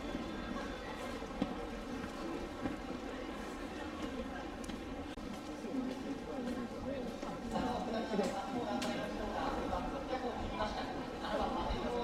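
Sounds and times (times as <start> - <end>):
outdoor background noise: 0.0 - 12.0.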